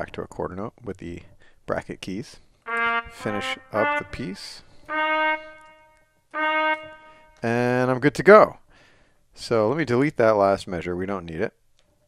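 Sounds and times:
synthesized trumpet notes: 0:02.7 - 0:07.7.

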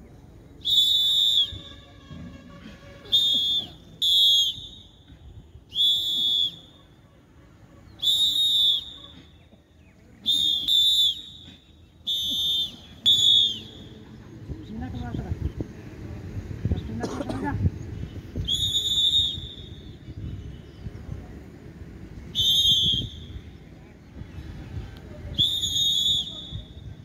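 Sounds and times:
pea whistle blasts: 0:00.6 - 0:02.2, 0:03.0 - 0:06.8, 0:07.8 - 0:09.4, 0:10.2 - 0:14.0, 0:18.4 - 0:20.1, 0:22.3 - 0:23.6, 0:25.4 - 0:27.0.

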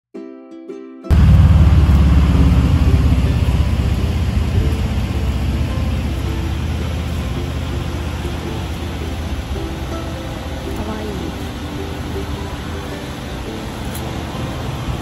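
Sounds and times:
low rumble of road traffic: 0:01.1 - 0:15.0.

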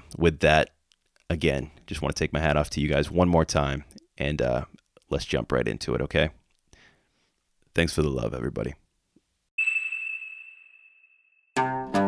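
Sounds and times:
high-pitched ping: 0:09.6 - 0:11.8.

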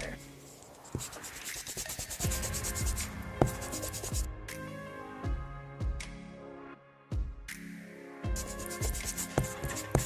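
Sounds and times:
scratchy brush strokes: 0:00.0 - 0:04.3, 0:08.4 - 0:10.0
electronic music with low beat: 0:00.0 - 0:06.3, 0:08.3 - 0:10.0.

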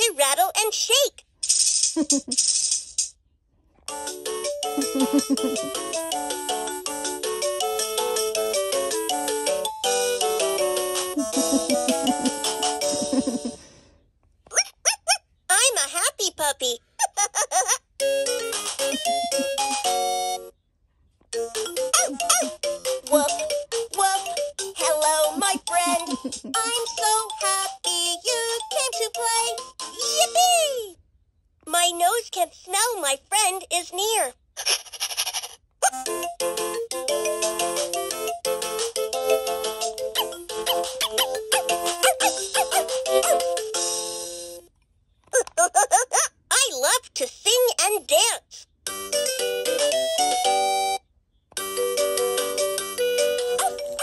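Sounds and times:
toy rattling: 0:01.2 - 0:03.2, 0:34.6 - 0:35.6
electronic toy voice laughing: 0:02.0 - 0:02.4, 0:04.6 - 0:06.2, 0:11.0 - 0:13.7, 0:14.5 - 0:15.2, 0:16.9 - 0:20.4, 0:21.8 - 0:23.5, 0:24.8 - 0:27.2, 0:34.6 - 0:36.2, 0:39.3 - 0:43.6, 0:45.3 - 0:46.4
electronic backing music: 0:03.9 - 0:13.5, 0:18.2 - 0:20.5, 0:36.0 - 0:43.9
electronic toy voice singing: 0:21.9 - 0:30.9.

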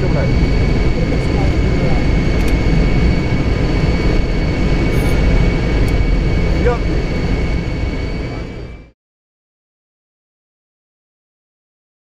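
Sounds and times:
airflow: 0:00.0 - 0:08.9
high engine whine: 0:00.0 - 0:09.0
jet engines roaring low: 0:00.0 - 0:09.0.

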